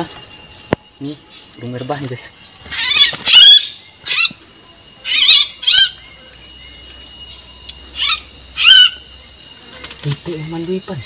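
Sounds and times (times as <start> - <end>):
high insect drone: 0.0 - 11.0
bird chirping calls: 2.3 - 9.0.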